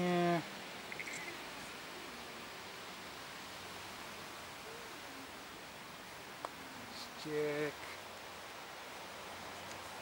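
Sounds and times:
faint hiss: 0.0 - 10.0.

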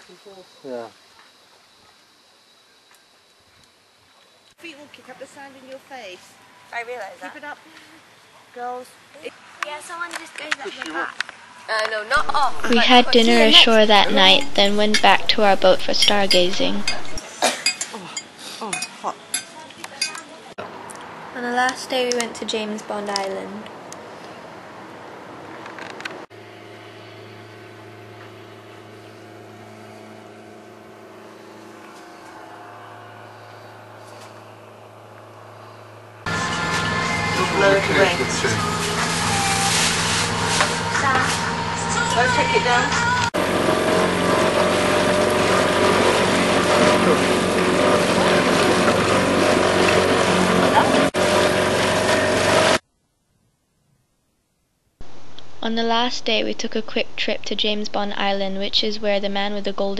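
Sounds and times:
boat engine humming: 11.4 - 17.3, 26.3 - 52.8
water and rushing air: 43.4 - 52.8.

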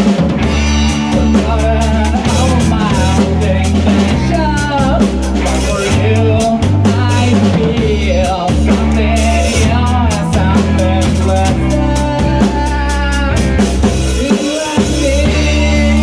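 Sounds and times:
bass guitar: 0.0 - 16.0
distorted electric guitar: 0.0 - 16.0
drum kit: 0.0 - 16.0
man singing: 0.0 - 16.0.

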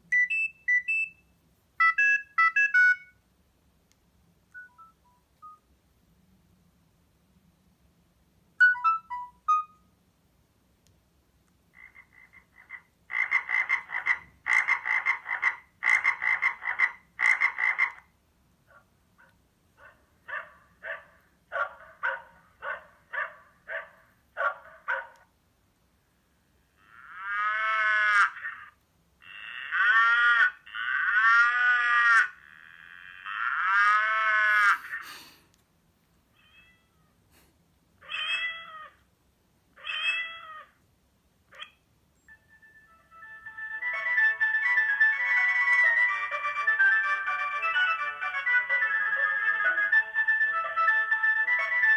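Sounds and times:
phone ringtones through small speaker: 1.8 - 3.2, 8.6 - 9.8, 42.3 - 51.9.

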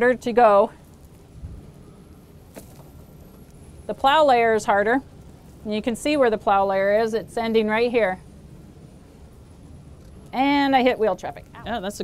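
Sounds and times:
low wind rumble: 0.0 - 12.0.

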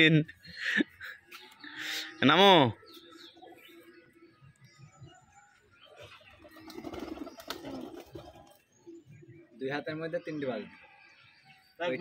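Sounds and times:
pigeons cooing: 2.8 - 9.6.

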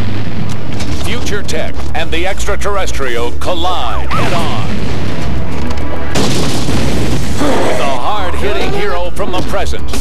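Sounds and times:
explosion boom: 0.0 - 1.7, 4.0 - 8.3.

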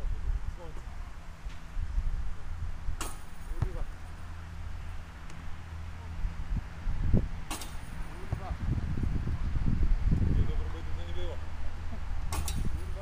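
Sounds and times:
steady low rumble: 0.0 - 13.0
basketball clanging on metal hoop: 3.0 - 3.8, 7.5 - 8.0, 12.3 - 12.8.

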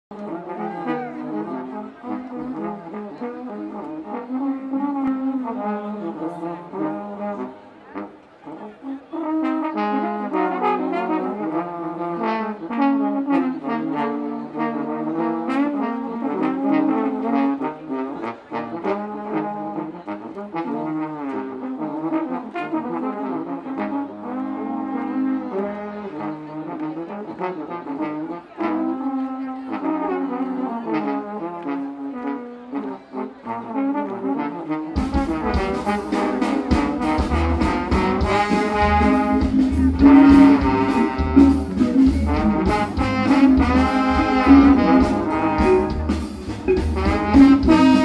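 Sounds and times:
trombones playing a melody: 0.1 - 48.0
drums: 34.9 - 48.0
electric guitar: 35.0 - 48.0
bass: 37.2 - 48.0.

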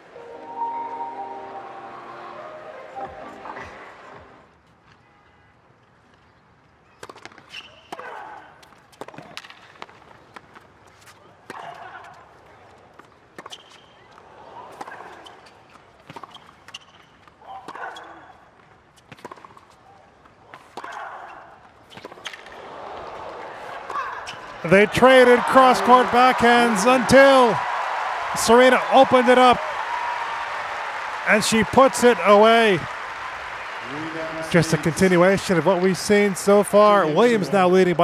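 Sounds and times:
background music: 0.0 - 4.5
crowd voices: 0.0 - 4.5, 22.5 - 38.0.

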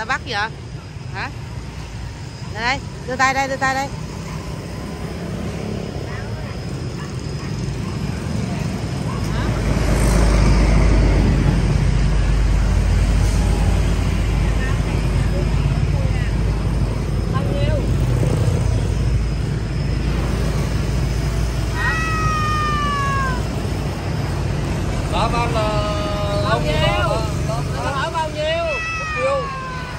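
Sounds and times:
low rumble of street traffic: 0.0 - 29.9
cat meowing: 28.6 - 29.9.

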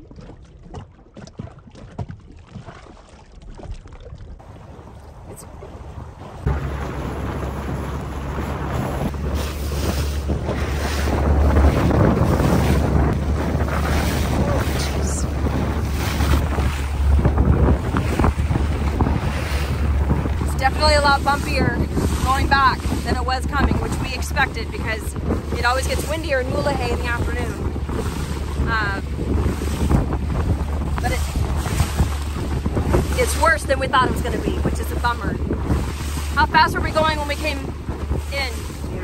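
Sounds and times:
water splashing along hull: 0.0 - 39.0
wind buffeting microphone: 0.0 - 39.0
heavy low rumble: 4.4 - 39.0.

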